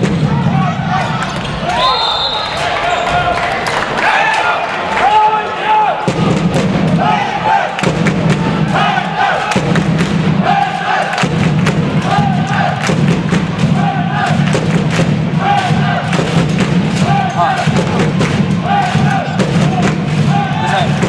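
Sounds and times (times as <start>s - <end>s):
crowd chanting: 0.0s - 1.9s, 2.5s - 21.0s.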